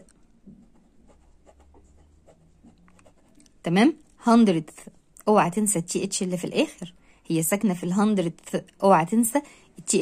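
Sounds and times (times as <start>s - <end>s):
pen scratching on paper: 0.0s - 3.5s.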